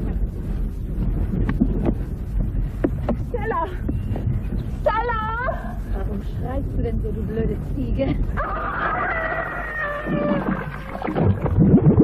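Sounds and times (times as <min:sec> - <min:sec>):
low rumble of wind: 0:00.0 - 0:12.0.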